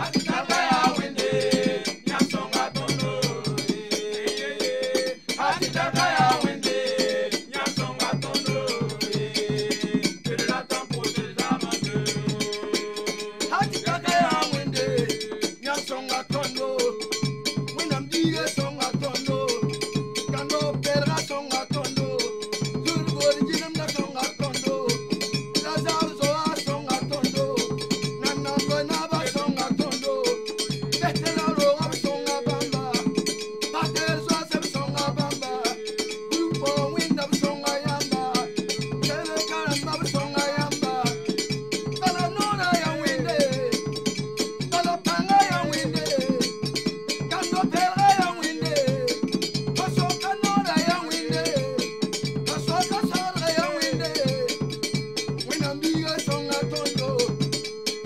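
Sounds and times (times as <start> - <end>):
men singing together: 0.0 - 57.5
hand drums: 0.0 - 58.0.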